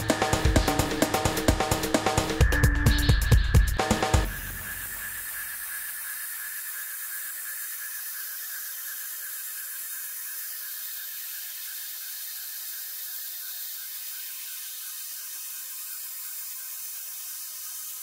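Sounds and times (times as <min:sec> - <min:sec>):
background music: 0:00.0 - 0:05.0
faint high whine: 0:00.0 - 0:18.0
steady hiss: 0:03.8 - 0:18.0.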